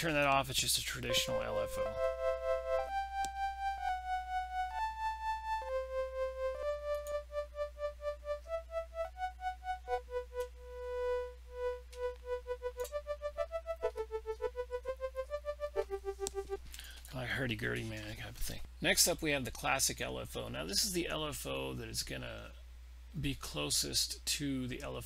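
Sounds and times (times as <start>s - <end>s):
pulsing organ synth melody: 1.1s - 16.7s.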